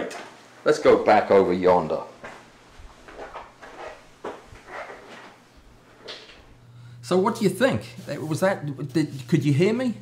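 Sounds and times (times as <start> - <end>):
footsteps walking: 1.3 - 6.6.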